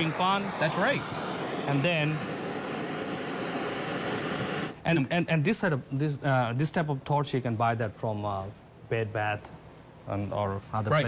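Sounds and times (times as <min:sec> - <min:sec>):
kitchen torch hissing: 0:00.0 - 0:04.8.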